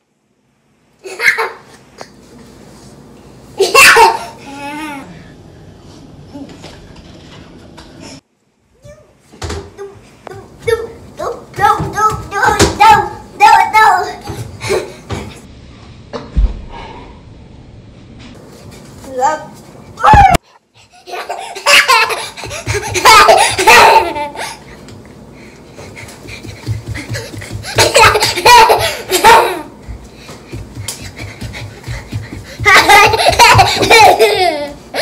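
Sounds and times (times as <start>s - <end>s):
young children laughing: 1.0s - 1.8s, 3.6s - 5.0s, 20.8s - 24.6s, 26.6s - 29.8s, 31.2s - 35.0s.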